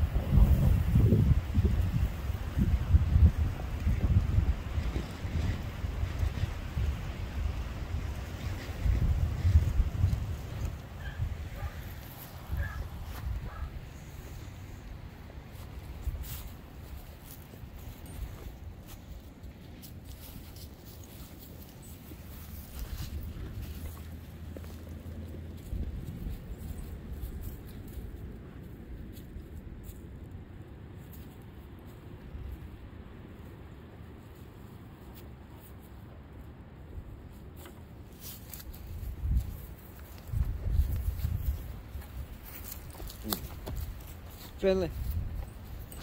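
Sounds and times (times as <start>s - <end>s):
wind rumble on microphone: 0.0s - 46.0s
footfalls in grass and leaves: 11.4s - 28.2s, 37.4s - 46.0s.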